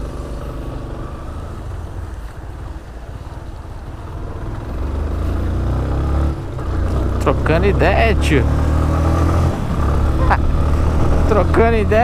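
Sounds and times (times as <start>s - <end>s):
motorcycle engine running: 0.0s - 12.0s
road and wind noise: 0.0s - 12.0s.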